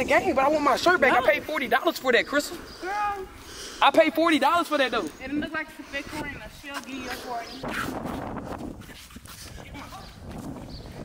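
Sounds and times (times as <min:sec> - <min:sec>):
running footsteps on concrete: 0:04.0 - 0:11.0.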